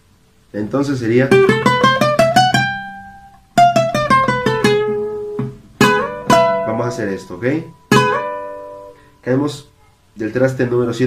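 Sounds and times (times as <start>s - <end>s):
plucked guitar runs: 1.3s - 8.9s.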